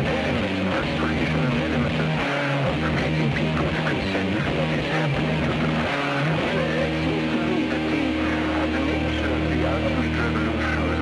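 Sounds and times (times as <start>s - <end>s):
distorted electric guitar chords: 0.0s - 11.0s
loud rock music: 0.0s - 11.0s.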